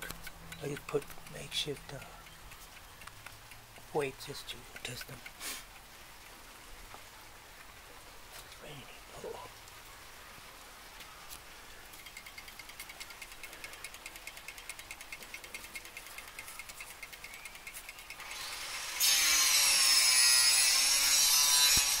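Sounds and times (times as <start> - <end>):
clock ticking fast: 0.0 - 5.9, 12.0 - 18.2
loud rasping scraping noise: 15.6 - 22.0.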